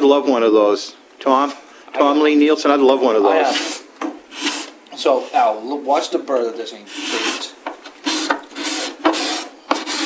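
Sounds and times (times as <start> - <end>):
scraper scraping wood: 3.4 - 5.5, 6.8 - 10.0.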